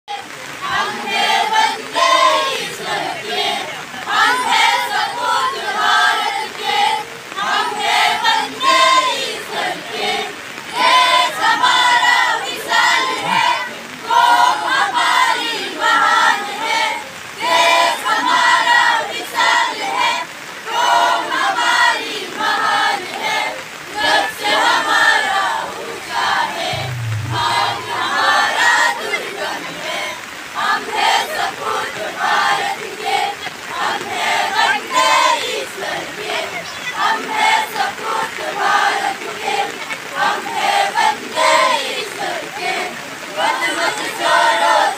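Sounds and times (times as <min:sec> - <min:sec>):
girls choir singing: 0:00.6 - 0:16.8, 0:20.7 - 0:36.4, 0:37.2 - 0:44.9.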